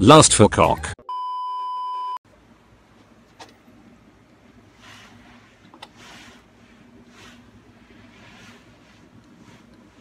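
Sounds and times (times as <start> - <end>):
electronic test-tone beep: 1.0 - 2.2.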